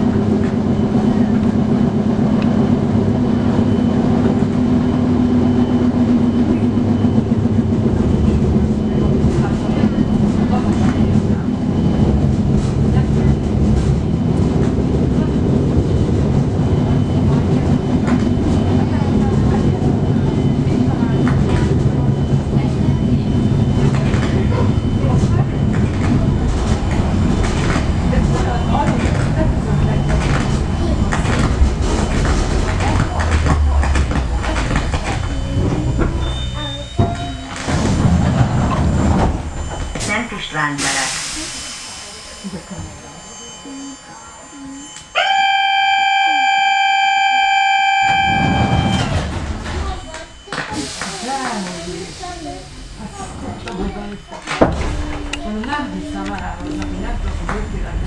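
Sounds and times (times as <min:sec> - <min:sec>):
electric train rumbling on track: 0:00.0 - 0:58.0
steady signal tone: 0:15.0 - 0:38.4, 0:39.1 - 0:40.8, 0:41.9 - 0:51.6
train wheel clicks: 0:31.1 - 0:36.2.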